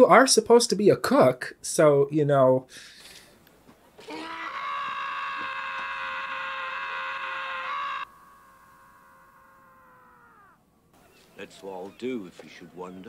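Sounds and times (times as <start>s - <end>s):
long loud scream: 4.0s - 10.9s.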